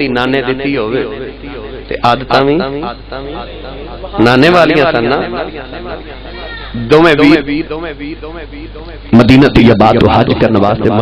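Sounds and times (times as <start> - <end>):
man's wavering voice: 0.0 - 11.0.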